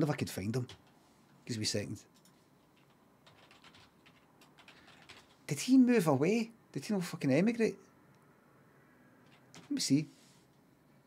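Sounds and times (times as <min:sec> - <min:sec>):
faint keyboard typing: 0:00.4 - 0:01.0, 0:02.1 - 0:05.6, 0:09.2 - 0:10.0.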